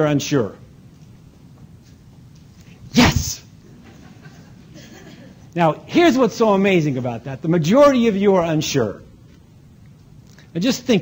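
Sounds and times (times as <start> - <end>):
person vocal burst: 3.0 - 3.4.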